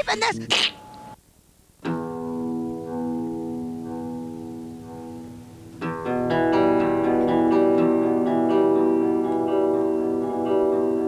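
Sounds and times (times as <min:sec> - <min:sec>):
acoustic guitar playing: 0:00.0 - 0:01.2, 0:01.8 - 0:11.0.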